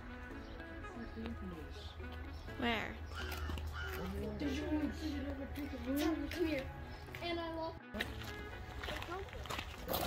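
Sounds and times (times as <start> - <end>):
faint voices outdoors: 0.0 - 10.0
quiet background music: 0.0 - 10.0.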